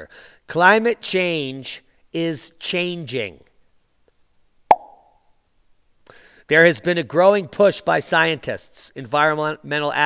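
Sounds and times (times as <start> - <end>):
sharp pop: 4.7 - 5.1.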